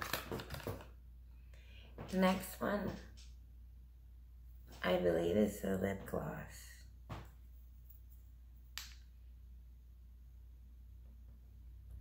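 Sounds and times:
faint low hum: 0.9 - 12.0.

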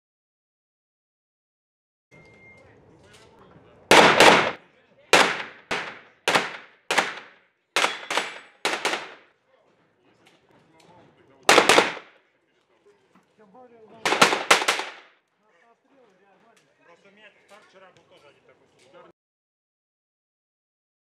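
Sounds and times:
gunshots echoing indoors: 3.9 - 4.6, 5.2 - 9.2, 11.5 - 12.1, 14.1 - 15.1.

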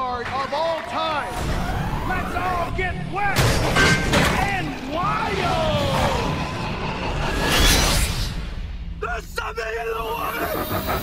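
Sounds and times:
trailer music with low bed: 1.0 - 11.0.

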